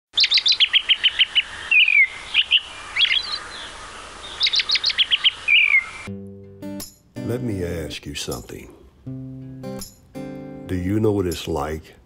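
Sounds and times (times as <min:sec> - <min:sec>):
songbird singing: 0:00.1 - 0:11.6.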